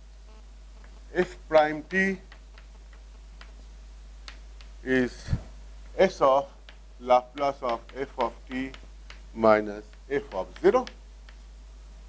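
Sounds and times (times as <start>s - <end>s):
steady low hum: 0.0s - 12.0s
chalk tapping on blackboard: 1.6s - 4.8s, 6.3s - 11.5s.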